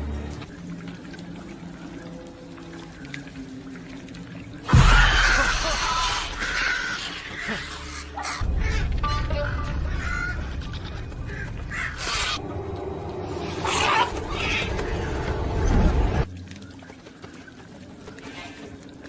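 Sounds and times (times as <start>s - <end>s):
film score music: 0.0s - 17.8s.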